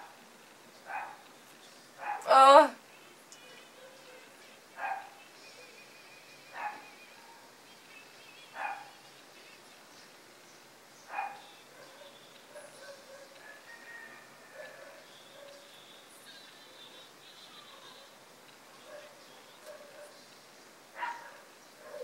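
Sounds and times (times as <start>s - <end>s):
dog barking: 0.9s - 1.2s, 2.0s - 2.3s, 4.8s - 5.2s, 6.5s - 7.5s, 8.6s - 9.0s, 11.1s - 15.7s, 18.8s - 20.2s, 21.0s - 22.0s.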